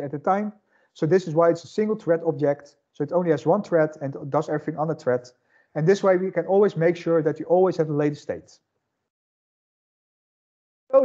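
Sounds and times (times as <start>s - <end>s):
man talking: 0.0s - 8.6s.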